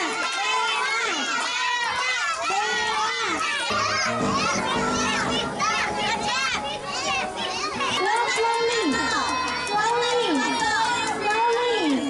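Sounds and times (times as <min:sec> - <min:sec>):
adults talking: 0:00.0 - 0:12.0
young children's voices at play: 0:00.0 - 0:12.0
background music: 0:03.7 - 0:12.0.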